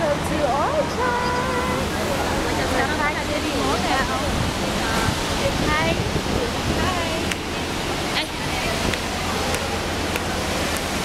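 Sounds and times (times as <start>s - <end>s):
chatter of passing people: 0.0s - 11.0s
traffic roar: 0.0s - 11.0s.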